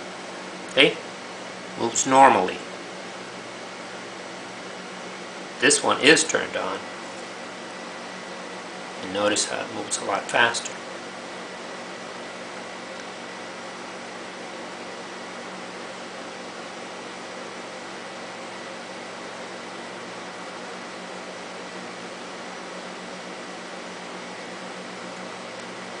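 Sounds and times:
faint low electrical hum: 0:00.0 - 0:26.0.

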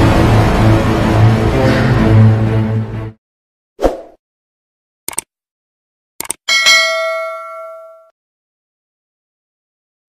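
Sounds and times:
quick clicks: 0:05.1 - 0:05.3, 0:06.2 - 0:06.4
notification bell ding: 0:06.5 - 0:08.1.

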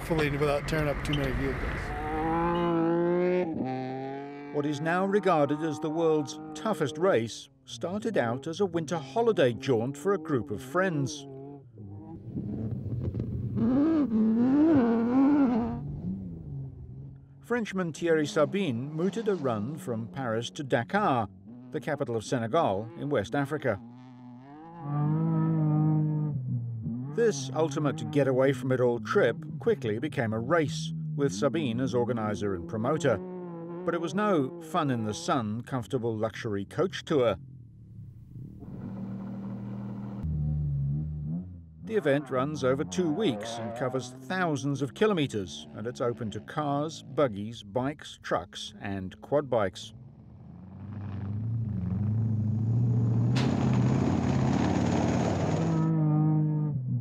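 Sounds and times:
vehicle engine running: 0:00.0 - 0:04.6, 0:37.3 - 0:41.8, 0:49.9 - 0:57.0
rally car engine revving: 0:00.0 - 0:35.4, 0:37.1 - 0:47.4, 0:49.9 - 0:57.0.

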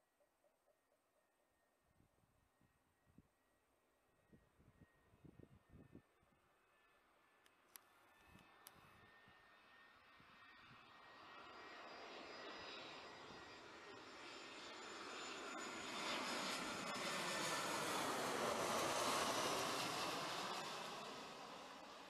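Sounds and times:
airliner engine noise passing overhead: 0:04.2 - 0:22.0.

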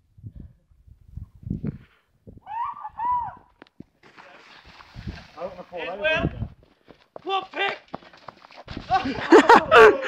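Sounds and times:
person hooting whoops: 0:02.4 - 0:03.5.

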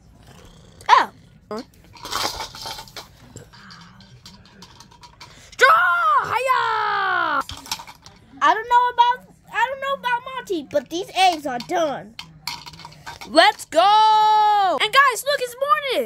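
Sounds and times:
plastic toy pieces clattering: 0:01.8 - 0:05.6, 0:07.4 - 0:08.3, 0:10.9 - 0:13.7
child talking: 0:08.4 - 0:12.1, 0:13.3 - 0:16.0.

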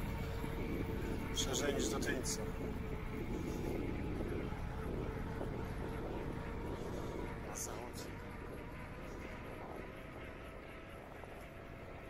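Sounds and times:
tyres rolling on asphalt: 0:00.0 - 0:12.0
wind on microphone: 0:00.0 - 0:12.0.

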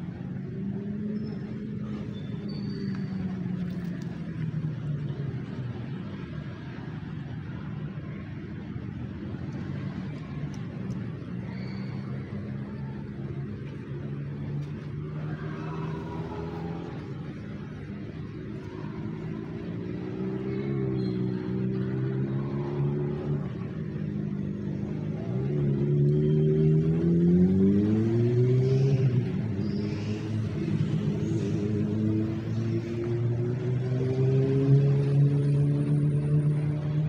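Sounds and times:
vehicle engine accelerating: 0:00.0 - 0:37.0.

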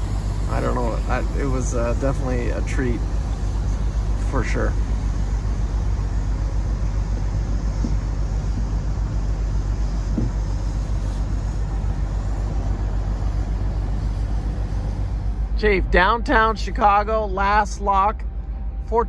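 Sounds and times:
boat engine droning: 0:00.0 - 0:19.0.

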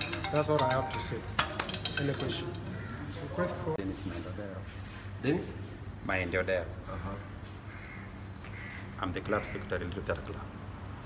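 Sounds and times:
caw-like bird calls: 0:02.7 - 0:03.4, 0:06.8 - 0:09.7.

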